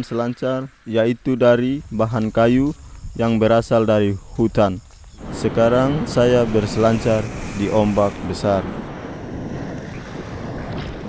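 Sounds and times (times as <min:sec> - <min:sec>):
wind noise on microphone: 0:01.4 - 0:11.0
ocean waves breaking: 0:05.2 - 0:11.0.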